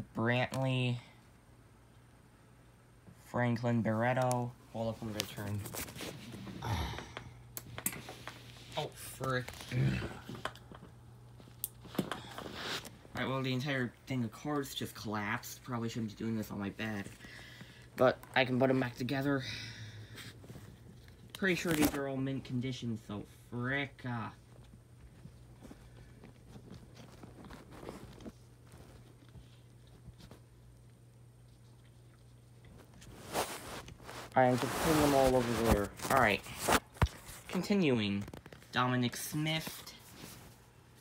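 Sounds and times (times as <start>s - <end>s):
trading cards handling noise: 4.1s - 6.5s, 20.3s - 22.1s, 31.4s - 38.7s.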